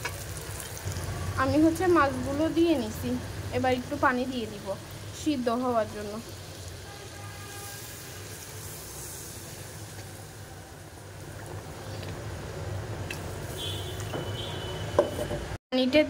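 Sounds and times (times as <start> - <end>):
curry sizzling in a wok: 0.0 - 15.2.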